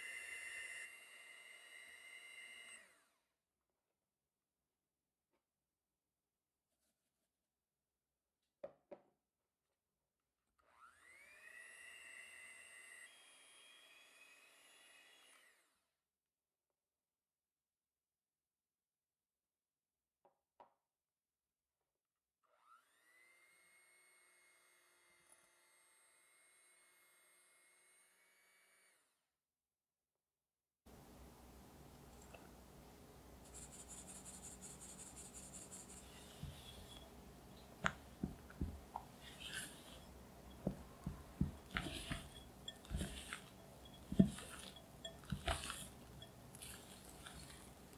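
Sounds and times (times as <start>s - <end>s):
electric hand mixer whining: 0.0s - 3.2s, 10.6s - 15.8s, 35.9s - 37.2s, 37.8s - 47.9s
flour sifting through sieve: 33.4s - 47.9s
glass clink: 40.5s - 47.5s.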